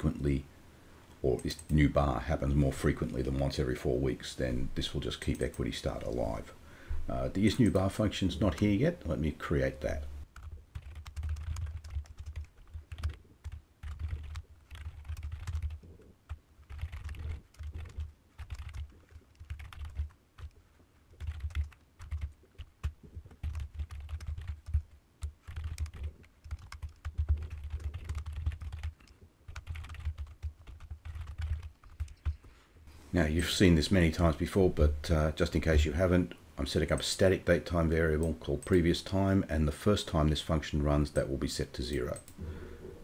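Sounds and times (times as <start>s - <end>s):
computer keyboard typing: 10.4s - 32.5s.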